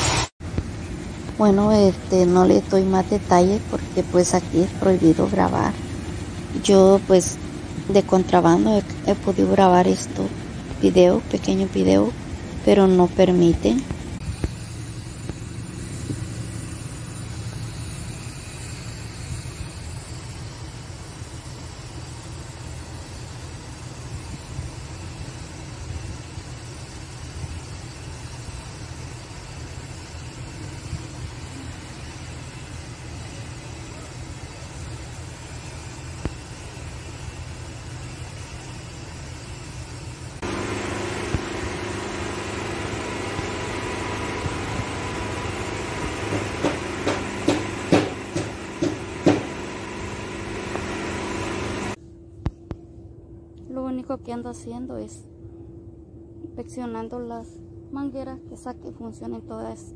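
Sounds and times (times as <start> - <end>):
steady machine hum: 0.0 - 59.9
low rumble of machinery: 0.4 - 59.9
sharp knocks or clatters: 46.3 - 49.5.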